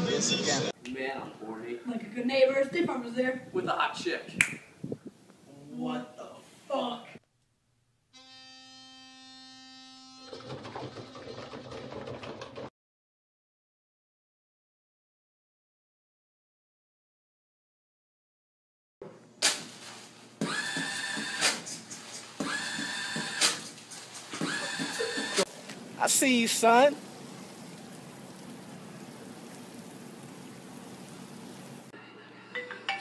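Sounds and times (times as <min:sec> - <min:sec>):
paper towel dispenser motor whirring: 0:20.4 - 0:25.6.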